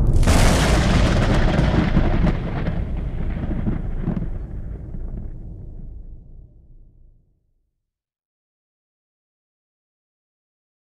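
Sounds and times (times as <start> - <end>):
rolling thunder rumble: 0.0 - 7.2.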